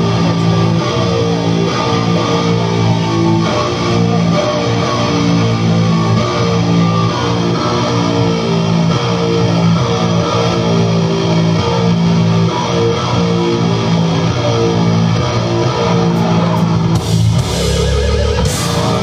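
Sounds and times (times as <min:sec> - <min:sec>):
bass guitar riff: 0:00.0 - 0:19.0
electric guitar riff: 0:00.0 - 0:19.0
rock band playing: 0:00.0 - 0:19.0.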